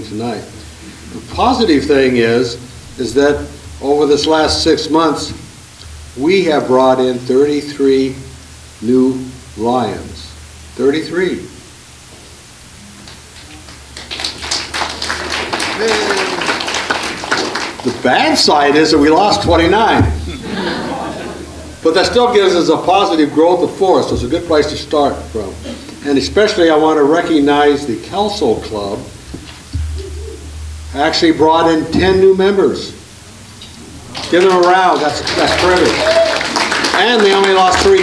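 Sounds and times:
audience applause: 13.4 - 18.4, 34.0 - 38.0
man humming mmm: 29.8 - 30.7.

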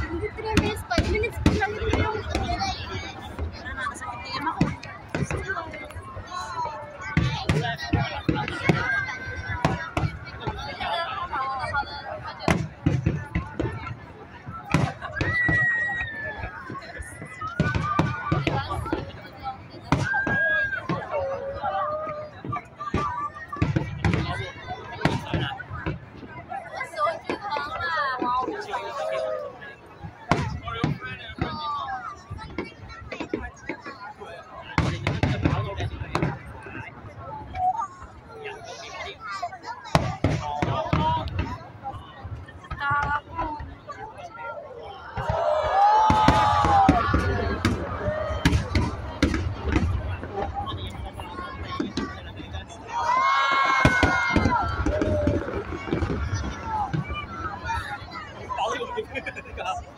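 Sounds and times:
fireworks bursting: 0.0 - 21.2, 22.1 - 29.2, 30.0 - 34.0, 34.7 - 39.2, 39.8 - 44.1, 45.2 - 59.9
crowd voices: 0.0 - 59.9
crowd cheering: 14.7 - 19.1, 26.7 - 31.9, 44.6 - 59.9.

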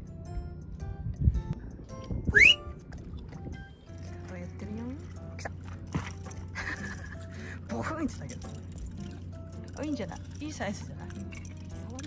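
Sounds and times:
background music: 0.0 - 12.0
rising whistle sound effect: 2.3 - 2.7.

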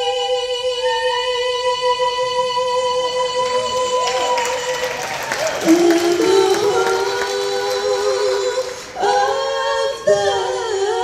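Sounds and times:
women singing in harmony: 0.0 - 11.0.

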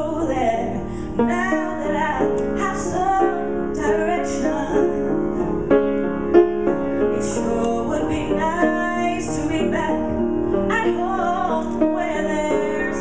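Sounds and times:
woman singing into microphone: 0.0 - 5.0, 7.2 - 13.0
piano accompaniment: 0.0 - 13.0.

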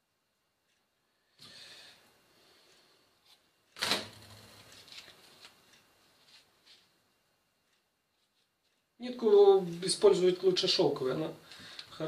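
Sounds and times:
soft rustles: 4.4 - 7.0, 7.7 - 8.9.

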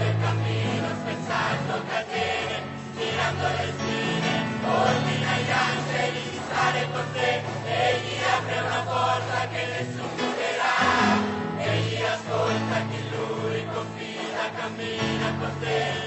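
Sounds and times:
choir singing gospel song: 0.0 - 16.0.

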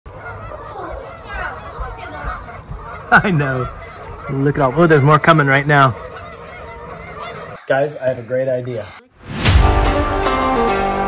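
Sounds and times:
flock of geese honking: 0.1 - 9.1.

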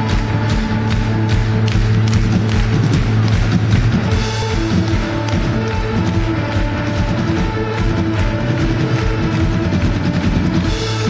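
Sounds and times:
bass drum beat: 0.0 - 11.0
hands clapping along: 0.0 - 11.0
live band music over pa: 0.0 - 11.0.

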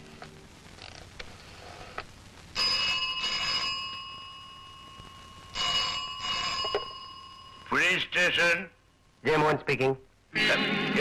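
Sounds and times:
telephone bell ringing: 2.6 - 7.7.

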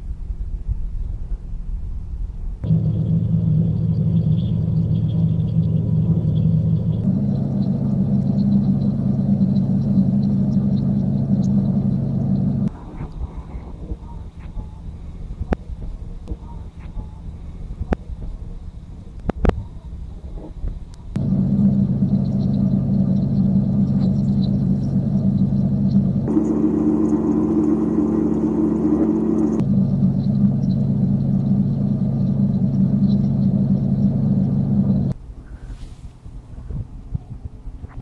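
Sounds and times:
low rumble: 0.0 - 38.0
low drone chord: 2.6 - 12.9, 21.2 - 35.3.

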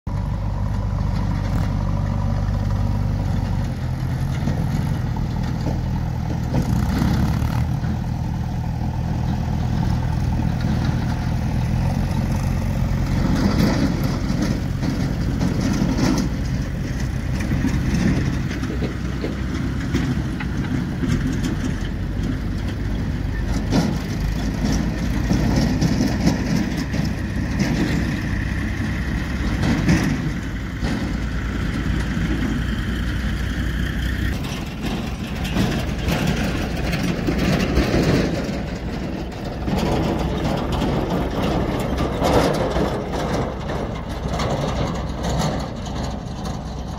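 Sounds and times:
diesel engines running: 0.1 - 46.9.

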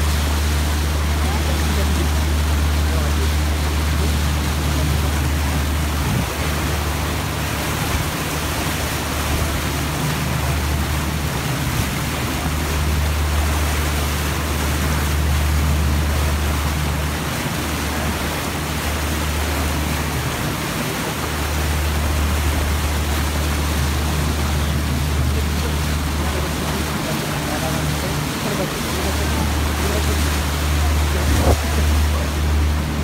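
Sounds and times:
boat engine droning: 0.0 - 33.0
wake water rushing: 0.0 - 33.0.

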